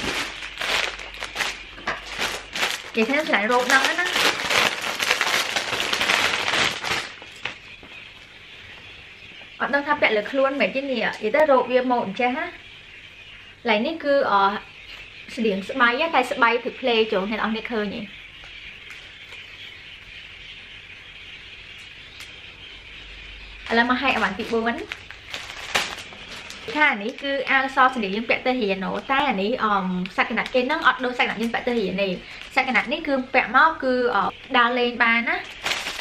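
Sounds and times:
plastic packaging crinkling: 0.0 - 7.9, 23.6 - 29.2, 30.0 - 33.1, 35.4 - 36.0.

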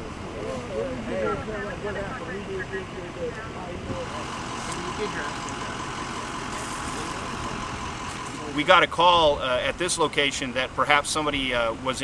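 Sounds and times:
faint steady whine: 0.0 - 12.0
vehicle engine idling: 0.0 - 12.0
voices talking: 0.0 - 12.0.

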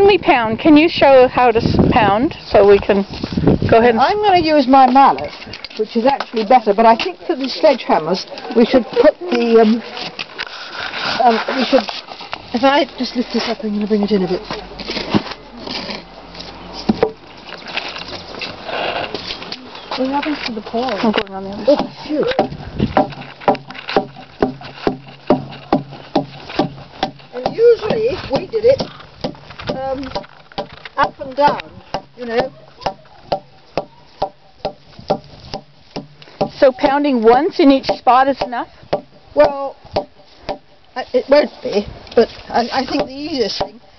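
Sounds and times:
handling noises: 2.5 - 43.8
log knocking on wooden block: 16.9 - 17.2, 20.8 - 40.7, 42.8 - 43.9.

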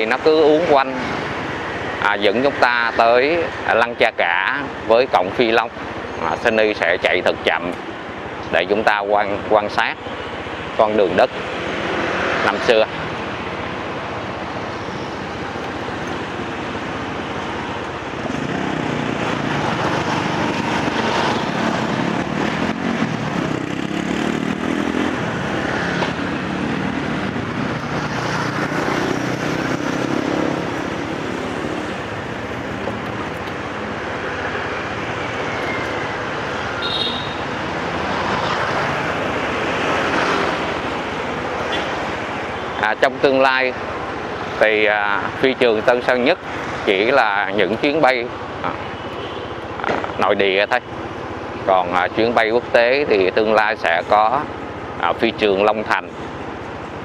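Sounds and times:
motorbike engines passing: 0.0 - 57.0
road and wind noise: 0.0 - 57.0.

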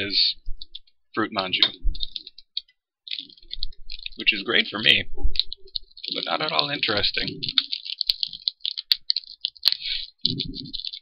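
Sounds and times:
plastic packaging crackling: 1.6 - 11.0.

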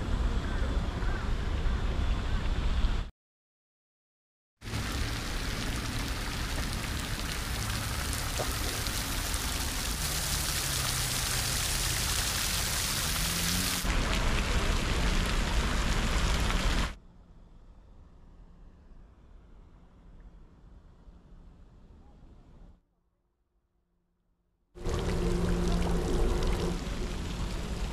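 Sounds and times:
steady rain falling: 4.6 - 17.0, 24.8 - 27.9.

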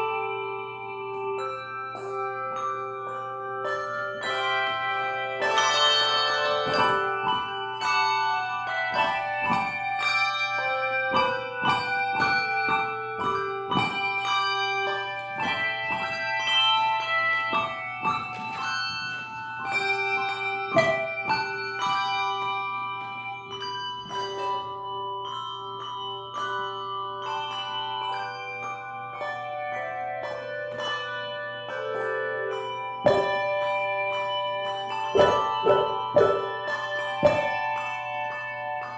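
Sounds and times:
handbells playing a slow melody: 0.0 - 38.9.

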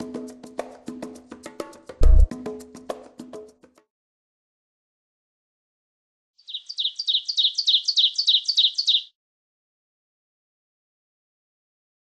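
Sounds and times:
high bird-like chirping trill: 6.4 - 9.2.

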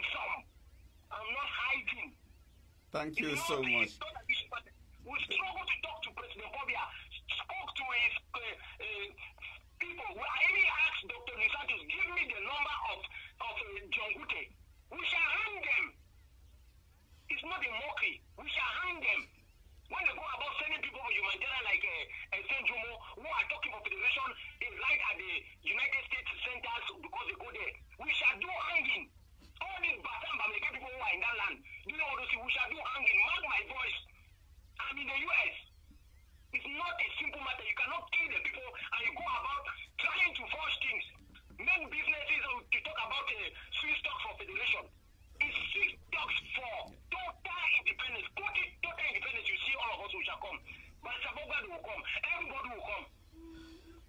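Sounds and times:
person talking over phone: 3.0 - 15.9, 45.4 - 53.9.

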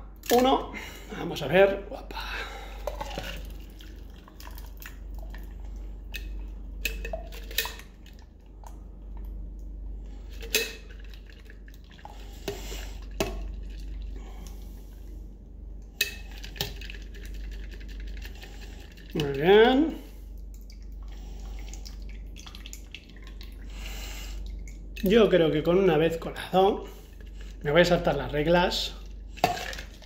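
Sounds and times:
faint pouring trickle: 3.0 - 8.4, 19.0 - 25.1.

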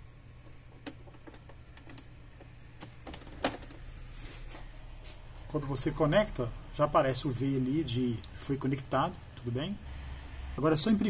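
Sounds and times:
cable being handled: 0.0 - 5.3.

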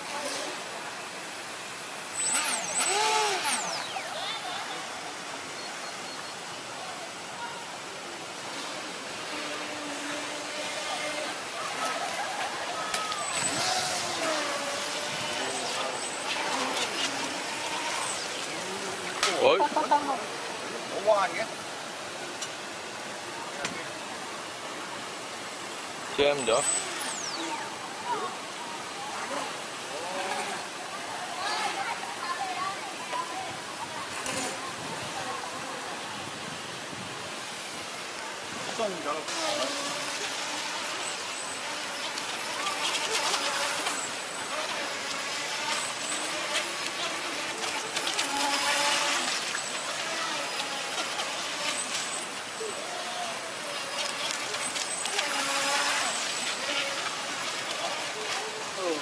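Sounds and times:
faint high whine: 0.0 - 19.6
propeller churning water: 0.0 - 59.0
model boat motor running: 1.6 - 4.8, 13.0 - 20.0, 38.8 - 59.0
model speedboat rushing hiss: 53.0 - 59.0.

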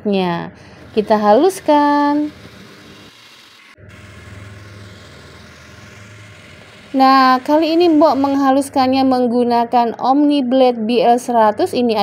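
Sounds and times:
food processor motor running: 0.6 - 9.0.

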